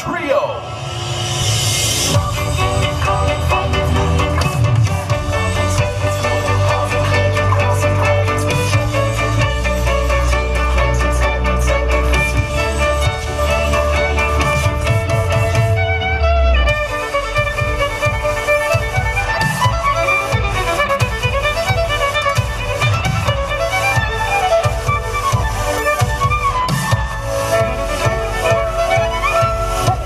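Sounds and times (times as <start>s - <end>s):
violins playing fast melody: 1.5s - 30.0s
low beat from backing track: 2.1s - 30.0s.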